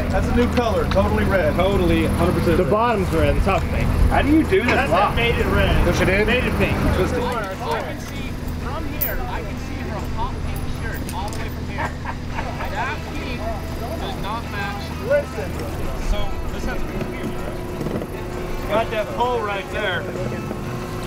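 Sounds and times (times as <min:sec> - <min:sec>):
people talking: 0:00.0 - 0:20.8
low engine drone: 0:00.0 - 0:21.0.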